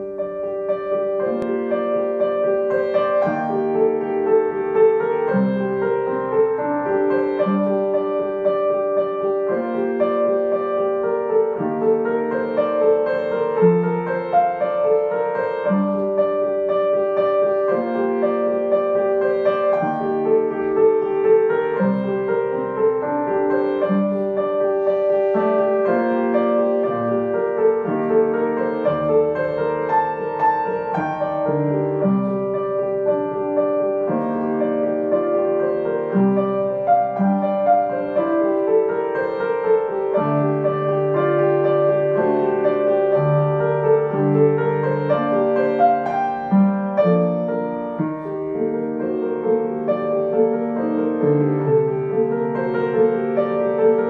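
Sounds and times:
piano playing slow chords: 0.0 - 54.0.

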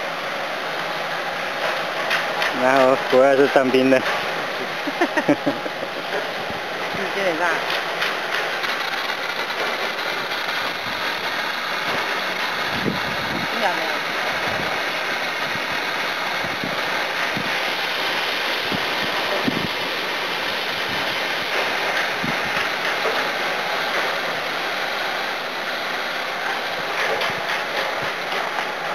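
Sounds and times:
fire extinguisher water jet rushing: 0.0 - 28.9.

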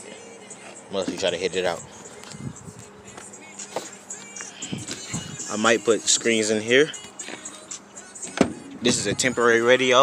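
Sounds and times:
faint music from car stereo: 0.0 - 10.0.

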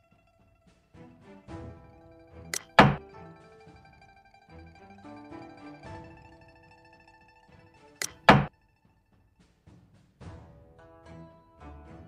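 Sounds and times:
soft plucked string music: 0.0 - 8.8, 10.4 - 12.0
game piece thunk: 2.5 - 3.9, 8.0 - 8.5.

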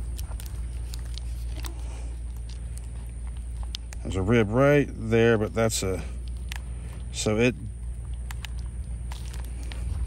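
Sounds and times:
plastic wrap crinkling: 0.0 - 4.1, 7.8 - 10.0
steady low rumble: 0.0 - 10.0.

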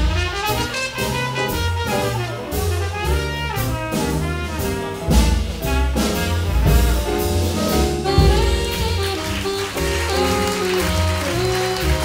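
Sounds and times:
jazz big band playing: 0.0 - 12.0.

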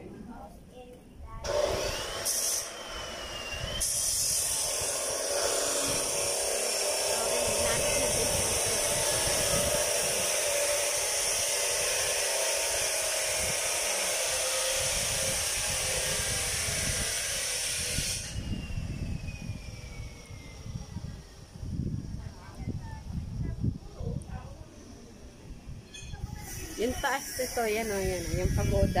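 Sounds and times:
wind buffeting microphone: 3.1 - 29.0.

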